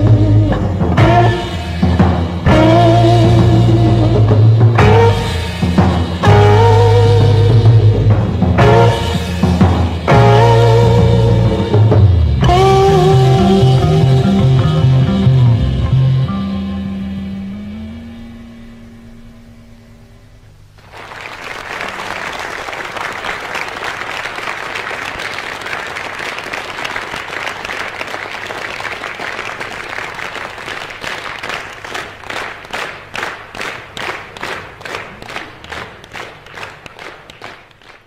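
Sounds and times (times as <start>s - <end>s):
guitar and bass chord ringing: 0.0s - 20.4s
audience applauding: 20.8s - 38.0s
rhythmic clapping in unison: 20.8s - 38.0s.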